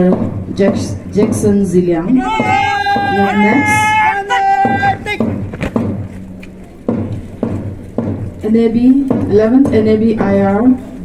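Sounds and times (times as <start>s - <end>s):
announcer over public address: 2.1s - 5.2s
sharp knocks: 2.2s - 6.2s, 6.9s - 8.3s.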